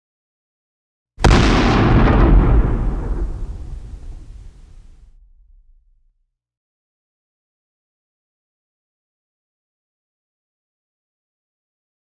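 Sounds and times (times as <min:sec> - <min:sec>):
deep explosion-like boom: 0:01.2 - 0:06.1.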